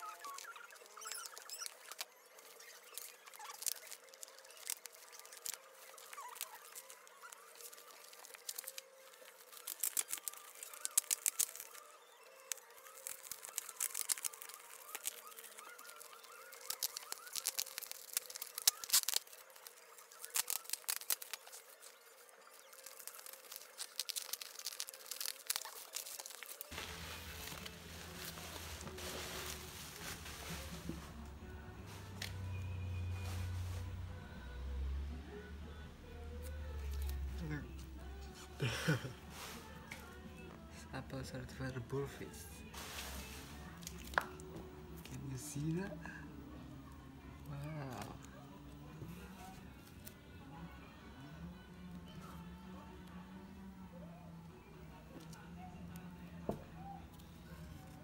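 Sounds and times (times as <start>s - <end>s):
bubble-wrap crinkling and crackling: 0.0s - 34.2s, 36.4s - 46.1s, 47.4s - 50.2s
background music: 0.0s - 58.0s.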